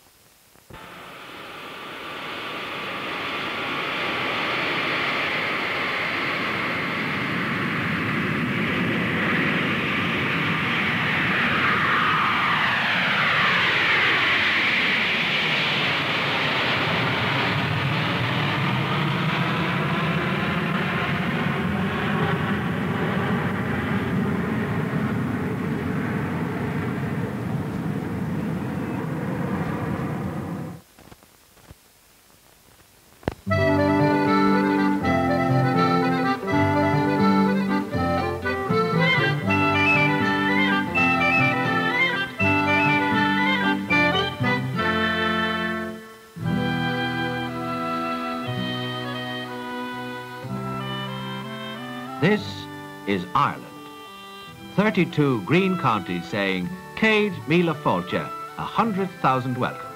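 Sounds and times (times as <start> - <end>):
jet whine dropping in pitch: 0.7 - 30.8, 33.4 - 59.9
jet engines passing overhead: 0.7 - 30.9, 33.4 - 59.9.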